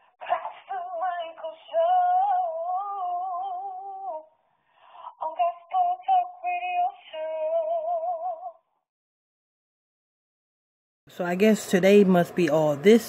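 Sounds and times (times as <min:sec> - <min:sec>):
woman singing with vibrato: 0:00.1 - 0:04.4, 0:05.0 - 0:08.6.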